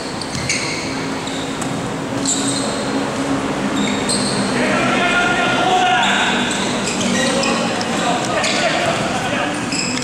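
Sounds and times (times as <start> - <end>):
sneaker squeaks on court: 0.0 - 2.8, 3.8 - 4.5, 6.0 - 7.8, 9.6 - 10.0
players calling out: 3.7 - 10.0.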